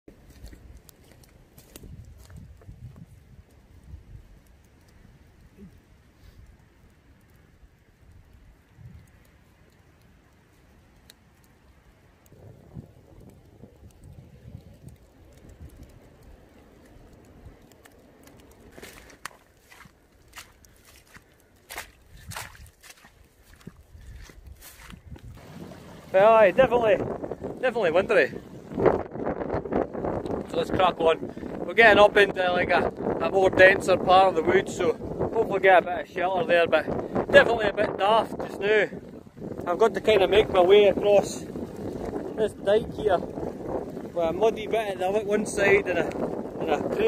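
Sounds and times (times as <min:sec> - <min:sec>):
wind gusting on microphone: 0:00.1 - 0:10.9, 0:11.5 - 0:47.0
crackles and clicks: 0:00.1 - 0:47.0.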